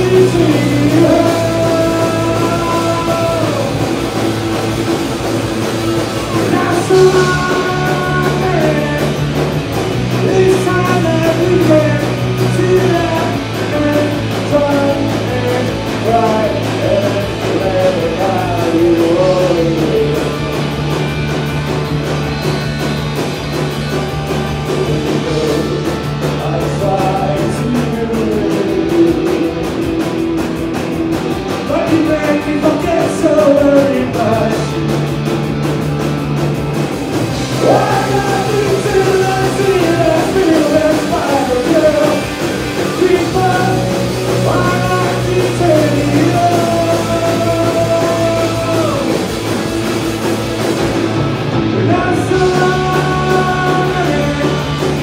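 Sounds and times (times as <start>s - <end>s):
man singing: 0.0s - 4.5s, 5.9s - 9.4s, 10.1s - 20.7s, 24.6s - 34.9s, 37.5s - 49.5s, 51.7s - 55.0s
bass guitar: 0.0s - 55.0s
drum kit: 0.0s - 55.0s
electric guitars: 0.0s - 55.0s.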